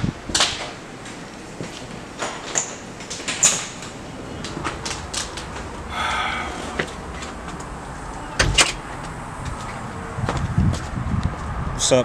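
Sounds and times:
door shutting knocks: 0:08.4 - 0:08.8.

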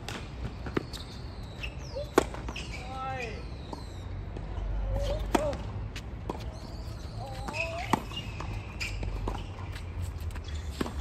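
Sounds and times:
tennis ball bouncing: 0:02.0 - 0:02.7, 0:03.6 - 0:09.9.

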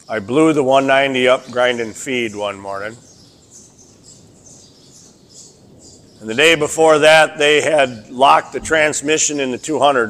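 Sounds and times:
low background noise: 0:00.0 - 0:10.0
small birds chirping: 0:00.0 - 0:10.0.

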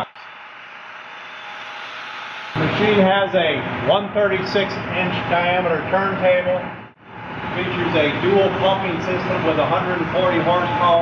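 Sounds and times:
steady hiss of hall noise: 0:02.0 - 0:11.0.

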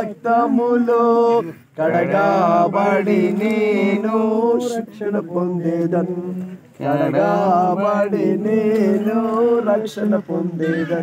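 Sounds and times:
man singing chant-like melody: 0:00.0 - 0:11.0.

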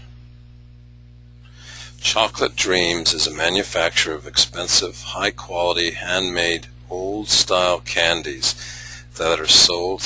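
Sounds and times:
low electrical hum: 0:00.0 - 0:10.0
soft breath: 0:01.5 - 0:02.0, 0:08.6 - 0:09.1.

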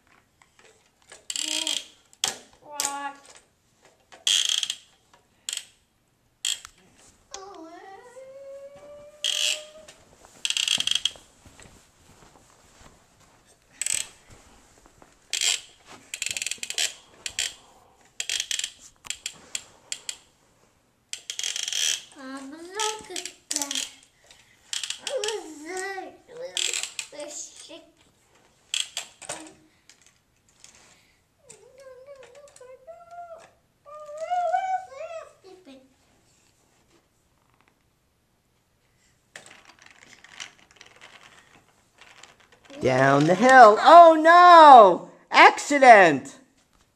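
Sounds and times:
child humming: 0:07.3 - 0:10.0
toy trains clattering on track: 0:39.4 - 0:42.7.

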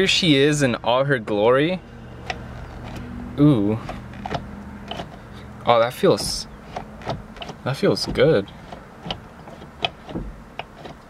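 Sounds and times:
gear shifter clicking: 0:02.2 - 0:11.0.

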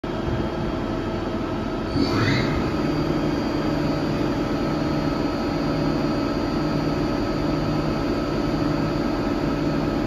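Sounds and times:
lathe machine hum: 0:00.1 - 0:10.0
steady whining tones: 0:00.2 - 0:10.0.

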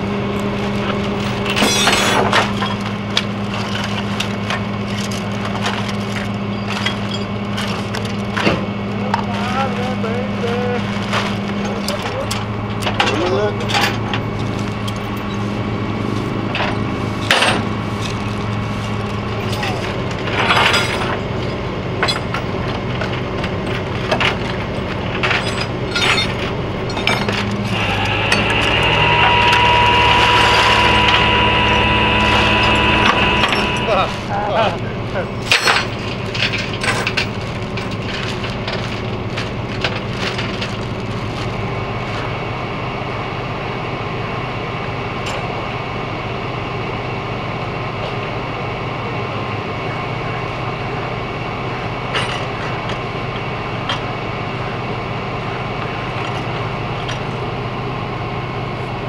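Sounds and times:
steady high whine: 0:00.0 - 0:59.0
metal clanks and scrapes: 0:00.8 - 0:08.6, 0:16.5 - 0:34.3, 0:35.4 - 0:40.9
vehicle engine idling: 0:02.4 - 0:59.0
faint voices: 0:27.5 - 0:35.5.

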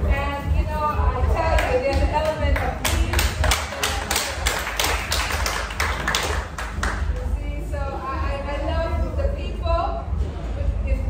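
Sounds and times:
rhythmic sharp tapping: 0:00.0 - 0:10.2.

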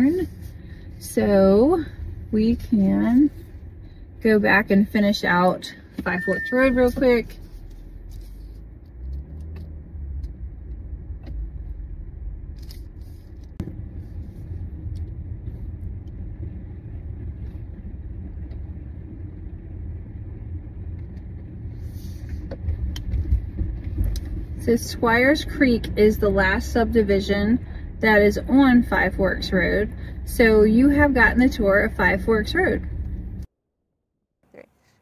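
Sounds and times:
car cabin rumble: 0:00.0 - 0:33.5.

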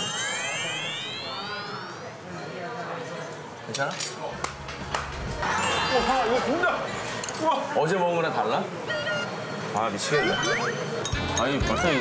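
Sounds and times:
whistle-like tone gliding upward: 0:00.0 - 0:02.0, 0:05.4 - 0:07.1.

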